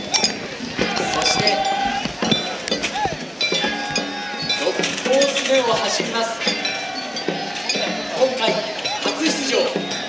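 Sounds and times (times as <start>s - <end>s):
metal clanging: 0.0s - 10.0s
voices calling out: 0.0s - 10.0s.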